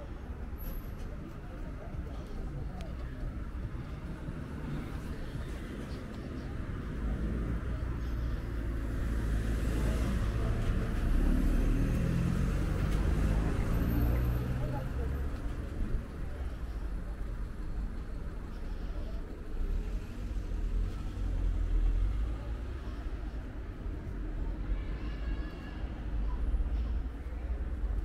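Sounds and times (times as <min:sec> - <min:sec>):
people talking faintly: 0:00.0 - 0:28.0
car passing: 0:08.8 - 0:15.4.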